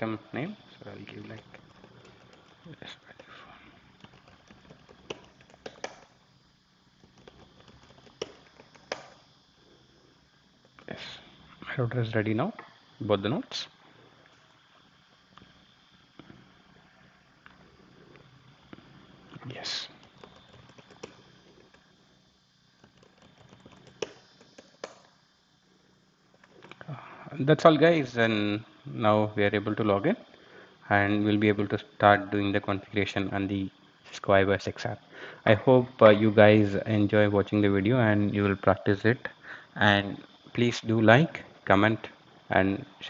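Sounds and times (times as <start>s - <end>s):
computer keyboard key clicks: 4.0s - 6.1s, 7.0s - 9.2s, 20.0s - 21.8s, 22.8s - 25.1s
keyboard key clicks: 4.0s - 6.1s.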